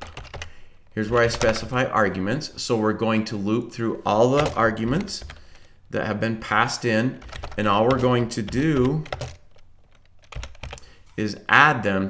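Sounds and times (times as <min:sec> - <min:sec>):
keyboard keystrokes: 0:04.4 - 0:05.4, 0:07.2 - 0:10.8.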